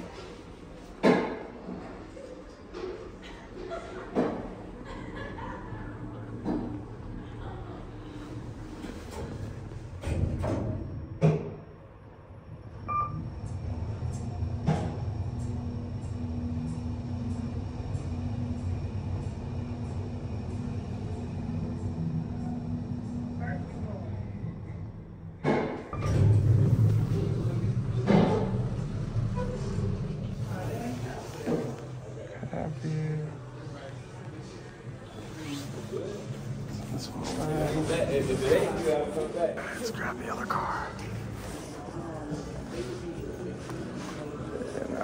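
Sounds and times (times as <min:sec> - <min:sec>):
elevator doors closing: 0:00.0 - 0:11.7, 0:25.4 - 0:32.2
elevator hum and whine: 0:00.0 - 0:45.0
hallway noise: 0:00.0 - 0:45.0
elevator doors sliding open: 0:05.9 - 0:11.1, 0:25.4 - 0:32.2.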